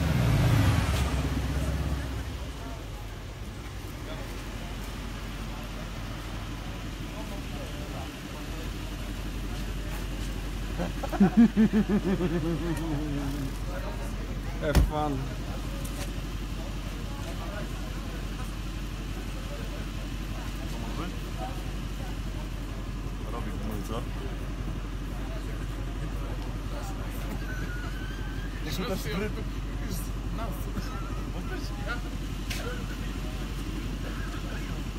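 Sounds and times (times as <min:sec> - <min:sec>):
car engine idling: 0:00.0 - 0:34.9
people's voices: 0:00.0 - 0:34.9.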